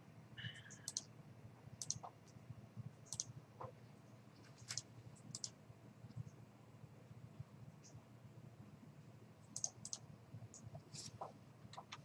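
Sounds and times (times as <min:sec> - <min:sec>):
computer mouse clicks: 0:00.7 - 0:01.1, 0:01.8 - 0:02.2, 0:03.0 - 0:03.3, 0:04.6 - 0:05.6, 0:09.5 - 0:10.7.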